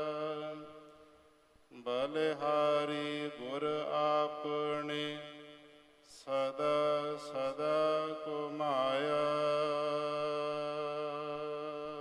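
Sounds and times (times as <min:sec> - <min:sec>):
devotional chanting voice: 0:00.0 - 0:12.0.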